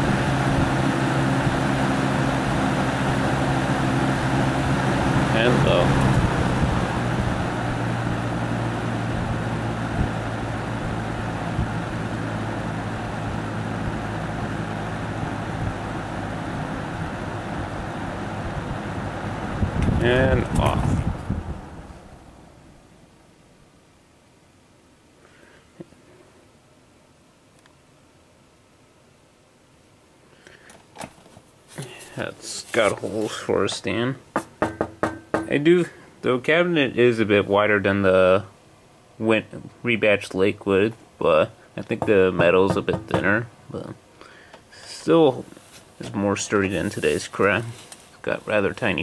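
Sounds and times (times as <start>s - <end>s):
box fan running: 0.0s - 49.0s
person speaking: 5.3s - 6.2s, 31.7s - 34.3s, 35.3s - 38.5s, 39.2s - 44.0s, 44.8s - 49.0s
faint rustling: 30.4s - 33.9s, 45.0s - 48.8s.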